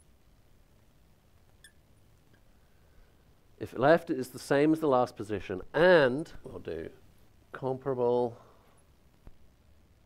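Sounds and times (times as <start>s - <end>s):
marker squeaking on glass: 1.6s - 1.8s.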